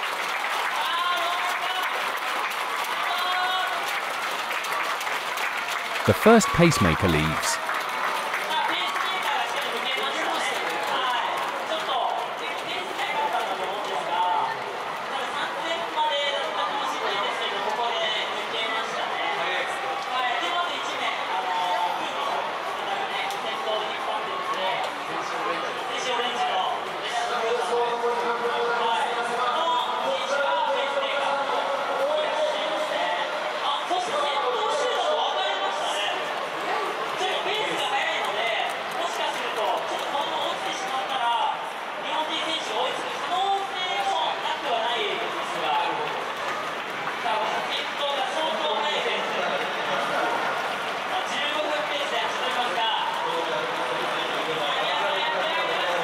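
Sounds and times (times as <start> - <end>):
people talking indistinctly: 6.1 - 7.6.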